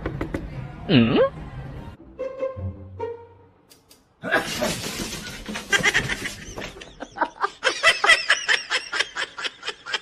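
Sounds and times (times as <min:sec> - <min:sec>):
person laughing: 0:05.5 - 0:10.0.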